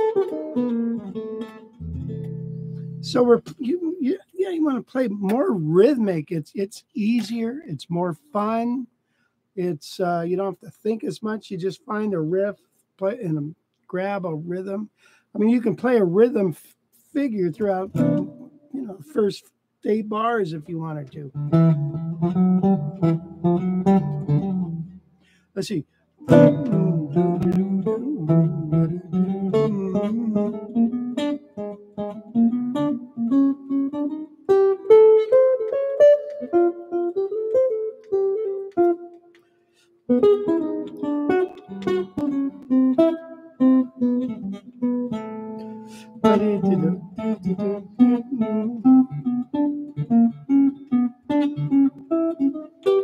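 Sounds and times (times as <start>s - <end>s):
amplified jazz guitar: 0.0s - 8.9s, 10.1s - 53.0s.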